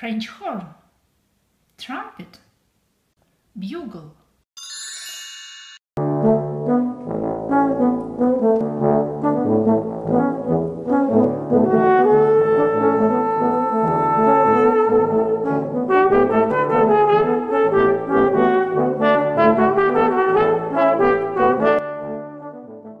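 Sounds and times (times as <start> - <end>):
short high chime: 4.6 - 5.8
brass ensemble playing: 6.0 - 23.0.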